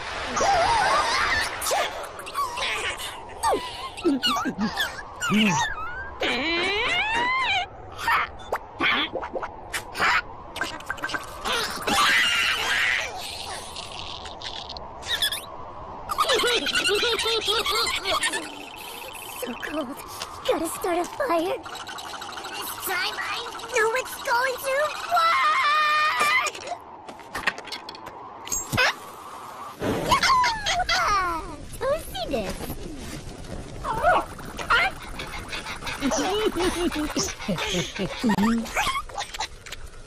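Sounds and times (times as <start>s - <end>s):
cartoon squeals and grunts: 0.5s - 9.1s, 11.5s - 13.6s, 24.4s - 26.8s.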